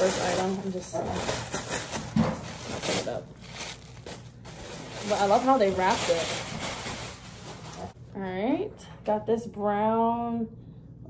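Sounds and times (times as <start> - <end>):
wrapping paper crinkling and tearing: 0.0 - 8.0.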